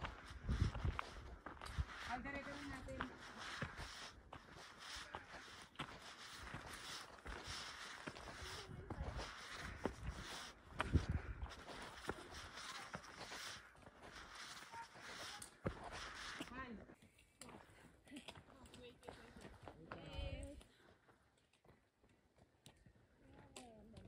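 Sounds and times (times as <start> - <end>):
footsteps on stone and gravel: 0.0 - 24.0.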